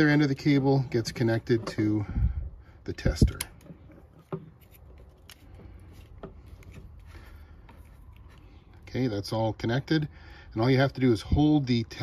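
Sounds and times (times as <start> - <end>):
metallic clicks and rubbing: 3.0 - 7.1.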